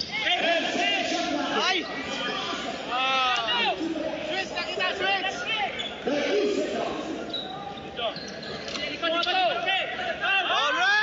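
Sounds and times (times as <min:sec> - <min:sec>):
voices of players and crowd: 0:00.0 - 0:11.0
shoe squeaks: 0:05.4 - 0:06.1, 0:07.2 - 0:09.5.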